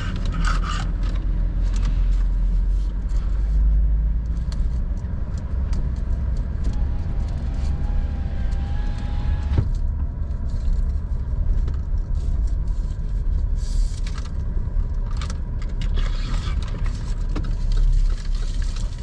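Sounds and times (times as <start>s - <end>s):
car engine and tyres rumbling: 0.0s - 19.0s
light clicks and rustles: 9.6s - 19.0s.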